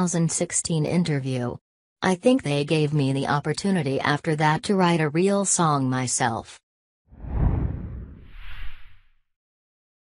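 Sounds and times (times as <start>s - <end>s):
heavy low whoosh: 7.2s - 9.1s.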